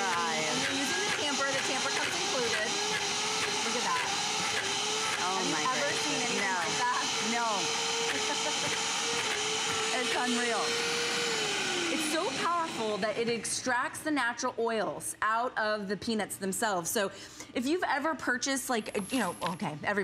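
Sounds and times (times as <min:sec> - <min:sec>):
blender whirring: 0:00.0 - 0:14.2.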